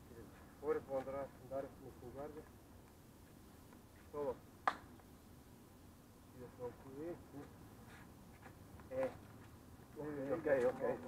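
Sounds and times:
sharp snap: 4.6 - 5.1.

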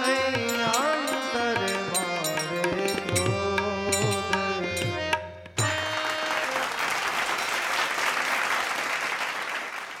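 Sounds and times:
harmonium held notes: 0.0 - 7.9
audience applauding: 5.8 - 10.0.

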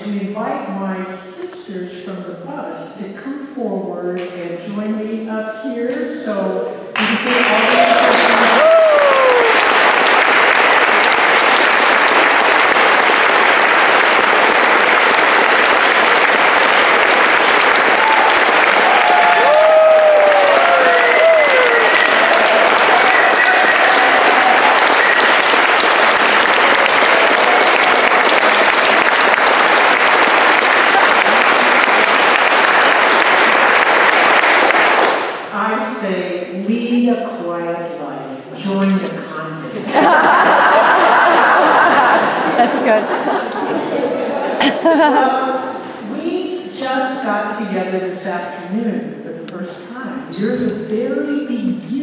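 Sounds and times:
audience clapping: 6.9 - 35.5, 39.9 - 44.0.

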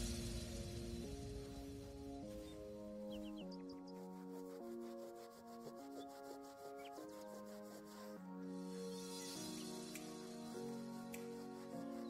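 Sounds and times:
soft music with held chords: 0.0 - 12.0.

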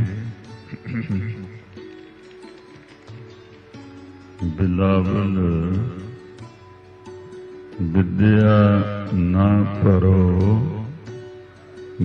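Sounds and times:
sustained instrumental accompaniment: 0.0 - 12.0.

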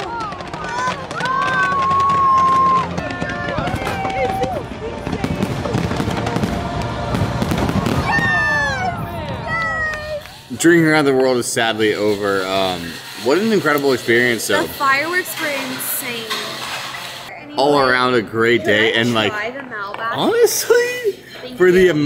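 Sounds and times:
fireworks bursting and crackling: 0.0 - 17.3.

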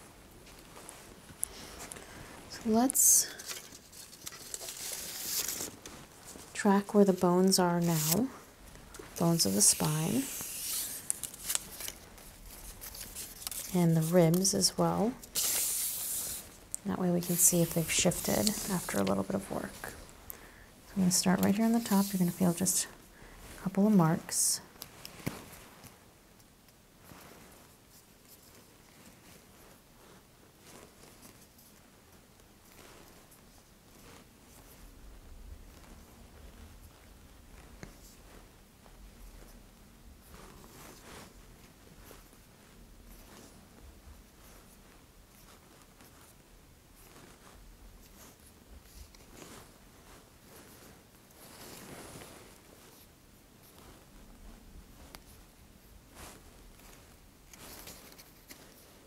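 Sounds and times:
hand on skin handling sounds: 0.5 - 6.6, 7.2 - 20.3, 20.9 - 23.6
fingertips brushing skin: 9.0 - 14.4, 17.2 - 19.2, 21.4 - 22.8.

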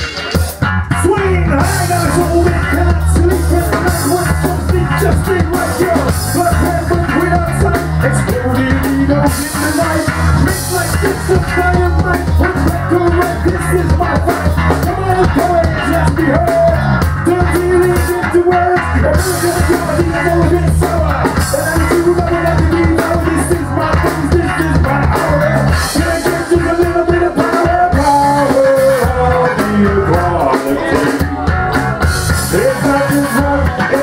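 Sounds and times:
bass guitar: 0.0 - 34.0
drum kit: 0.0 - 34.0
electric guitars: 0.0 - 34.0.

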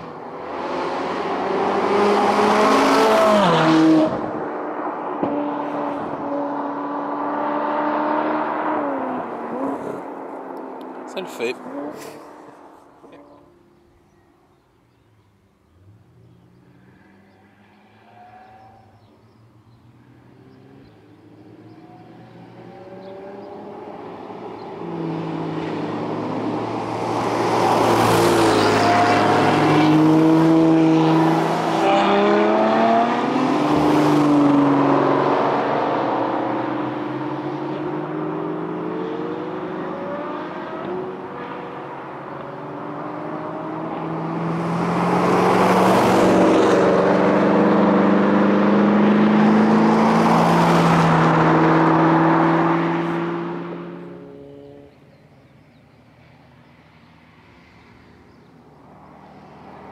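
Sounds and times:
car engines accelerating and passing: 0.0 - 59.9.

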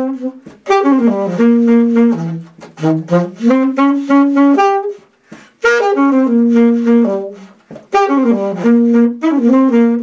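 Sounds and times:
alto saxophone jazz solo: 0.0 - 10.0.

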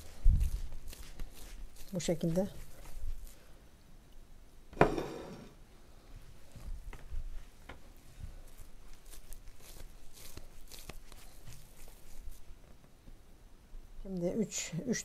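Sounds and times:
hands rolling soft food: 0.0 - 3.8, 6.2 - 13.3.

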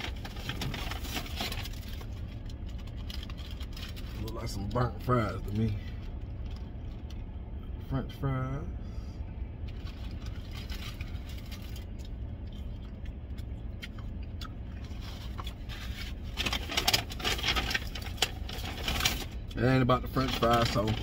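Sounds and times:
paper wrapper crinkling: 0.0 - 4.8, 9.7 - 12.2, 14.8 - 19.5, 20.1 - 21.0
low rumble inside truck cab: 0.0 - 21.0.

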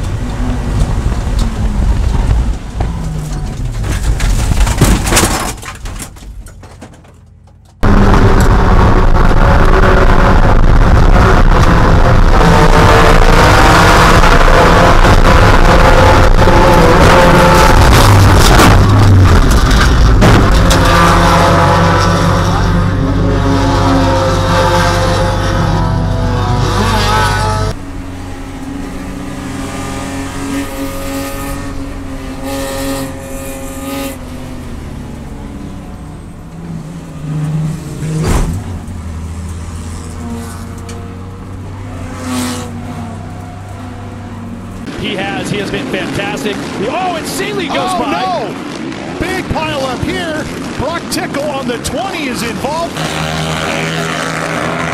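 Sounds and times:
racing car engine: 0.0 - 54.9.

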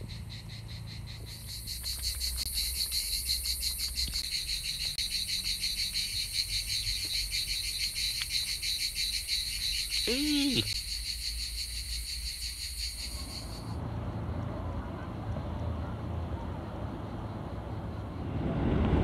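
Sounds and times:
cicadas chirring: 0.0 - 13.8.

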